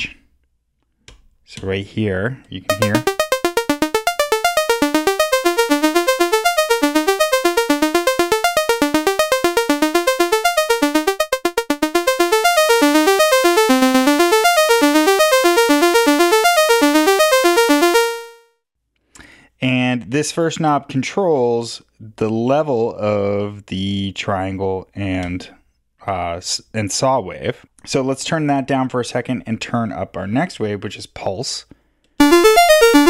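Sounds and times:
plucked synth notes: 2.7 - 18.4, 32.2 - 33.0.

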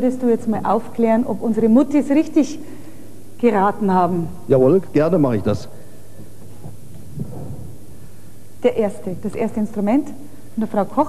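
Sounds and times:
low hum and rumble: 5.2 - 10.9.

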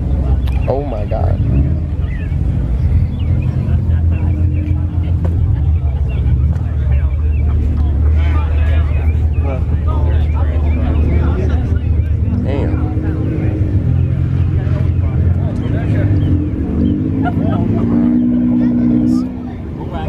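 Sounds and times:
car engine idling: 0.0 - 20.0
indistinct voices: 0.0 - 20.0.

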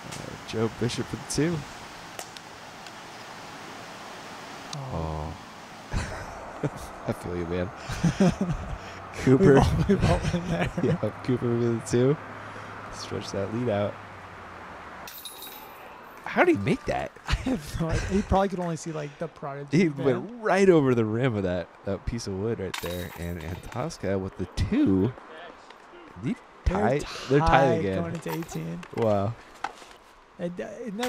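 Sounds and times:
outdoor background hiss: 0.0 - 31.0
metal chains jingling: 15.1 - 15.9.

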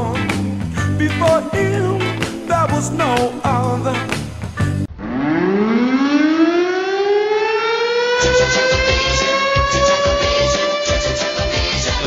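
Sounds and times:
siren-like wailing tone: 4.9 - 12.0
music jingle: 8.2 - 12.0.

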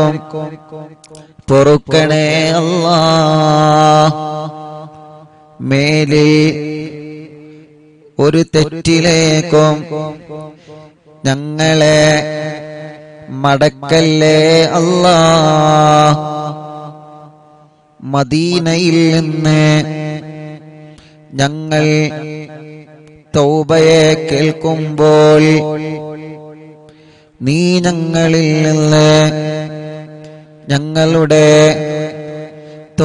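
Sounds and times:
man chanting: 0.0 - 33.0.

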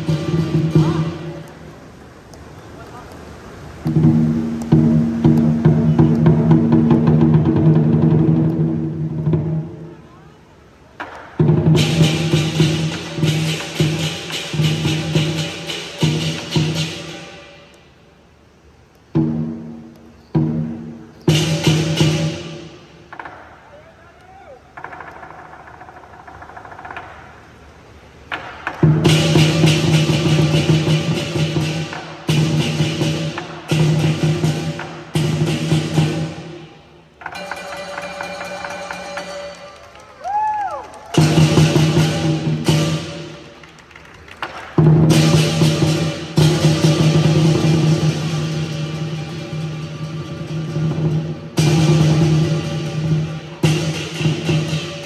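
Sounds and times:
fast percussion roll: 0.0 - 2.0, 3.7 - 9.9, 11.0 - 17.7, 19.1 - 23.8, 24.7 - 55.0
clashing cymbals: 11.4 - 18.0, 44.8 - 55.0.

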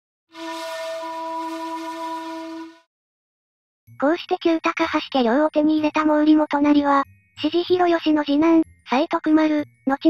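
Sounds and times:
wind instrument long note: 0.3 - 2.9.

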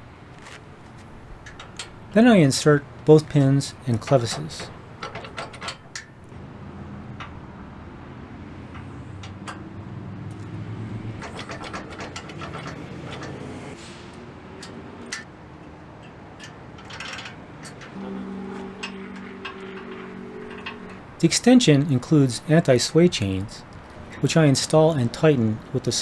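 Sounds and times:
metal hitch pins and chain clinking: 0.9 - 6.3, 7.0 - 7.6, 8.6 - 13.8, 14.5 - 25.8.

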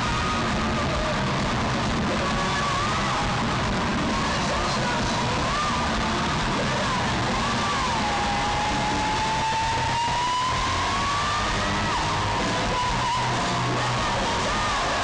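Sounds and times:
bass and drums: 0.0 - 15.0
electric lead guitar bends: 0.0 - 15.0.

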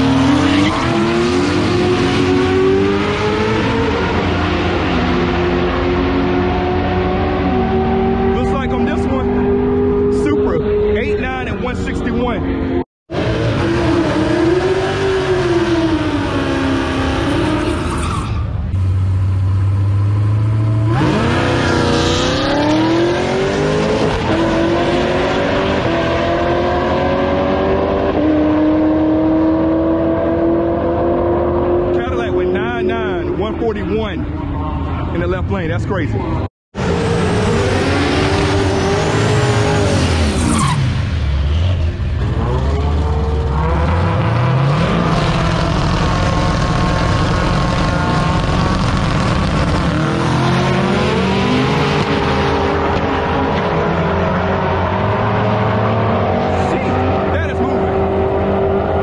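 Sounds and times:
car engine rumbling and accelerating: 0.0 - 59.0
drag racing engines: 0.0 - 59.0.

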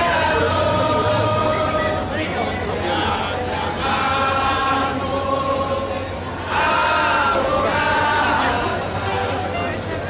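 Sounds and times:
many voices chanting: 0.0 - 9.5
crowd noise: 0.0 - 10.0.

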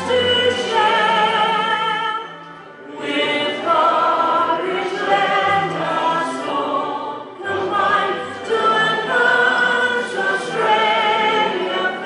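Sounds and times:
choir singing slow anthem: 0.0 - 12.0.

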